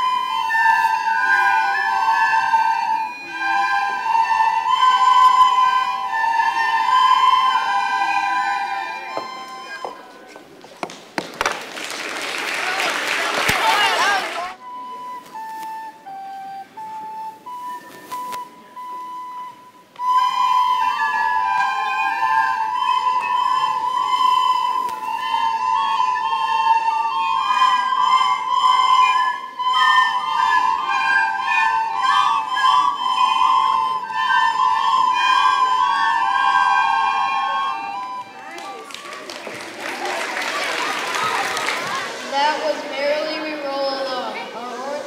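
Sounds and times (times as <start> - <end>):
children playing recorders: 0.0 - 10.5, 12.6 - 44.4
lone recorder notes: 0.0 - 10.5, 13.5 - 44.4.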